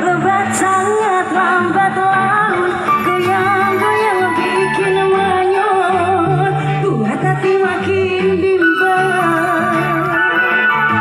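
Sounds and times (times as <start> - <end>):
live band music over pa: 0.0 - 11.0.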